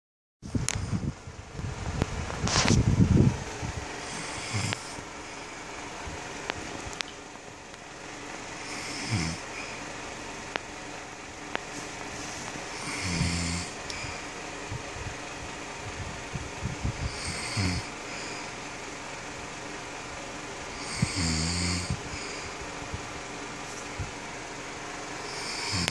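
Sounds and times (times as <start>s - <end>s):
man snoring: 4.0s - 5.0s, 8.6s - 9.7s, 12.7s - 14.2s, 16.9s - 18.5s, 20.7s - 22.6s, 25.2s - 25.9s.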